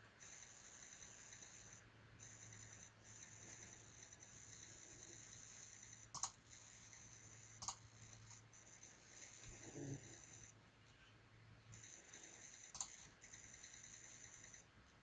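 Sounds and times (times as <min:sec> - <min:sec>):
low hum and faint hiss: 0:00.0 - 0:15.0
computer mouse clicks: 0:02.3 - 0:08.4, 0:11.8 - 0:14.7.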